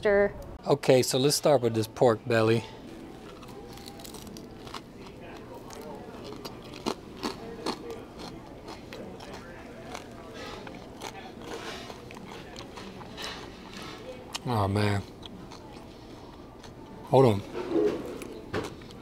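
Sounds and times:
person chewing crispy food: 3.2s - 17.3s, 18.1s - 19.0s.

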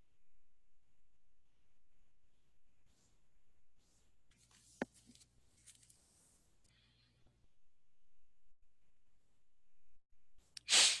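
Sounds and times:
burst of hissing noise: 10.6s - 11.0s.

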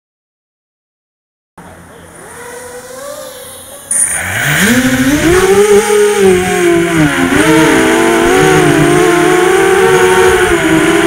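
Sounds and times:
drone motors whining: 1.6s - 11.0s.

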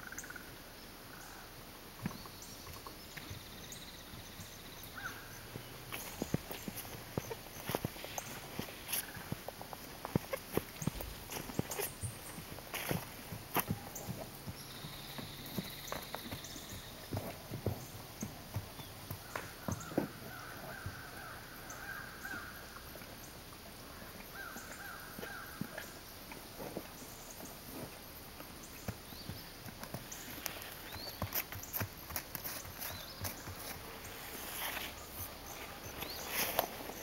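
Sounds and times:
hooves on leafy ground: 3.2s - 22.5s, 24.0s - 37.0s.

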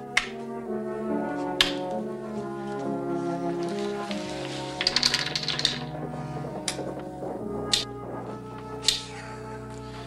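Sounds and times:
soft background music: 0.0s - 10.0s
checkers clacking on wooden board: 4.7s - 6.0s.

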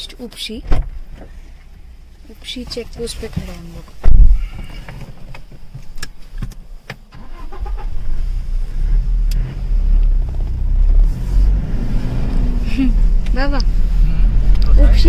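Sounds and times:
car rumble inside cabin: 7.8s - 15.0s.

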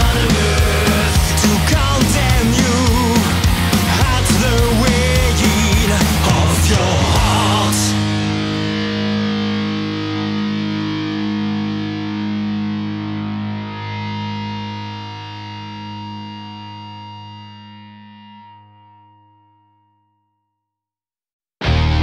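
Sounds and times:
heavy metal music: 0.0s - 17.5s, 21.6s - 22.0s
distorted guitar chord ringing: 0.0s - 20.1s, 21.6s - 22.0s.

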